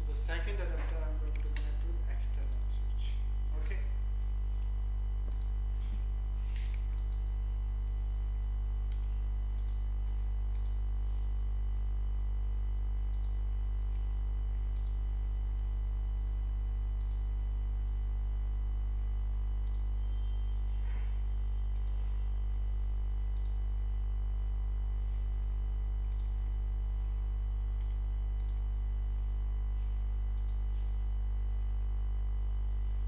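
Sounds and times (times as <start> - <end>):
low electrical hum: 0.0 - 33.0
faint ticks: 8.8 - 9.9, 10.5 - 10.8, 13.1 - 14.1, 14.7 - 15.0, 17.0 - 17.3, 19.6 - 19.9, 26.0 - 26.4, 27.7 - 28.7, 29.8 - 31.0.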